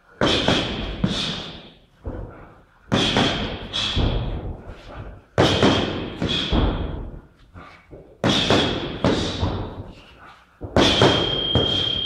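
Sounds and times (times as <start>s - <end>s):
punches and kicks hitting pads: 0.2s - 2.3s, 2.9s - 4.6s, 5.4s - 7.2s, 8.2s - 9.9s, 10.6s - 11.8s.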